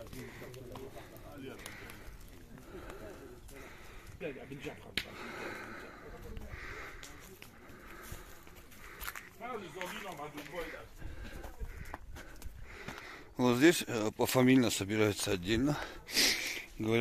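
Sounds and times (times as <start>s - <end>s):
distant people talking: 0.0s - 12.4s.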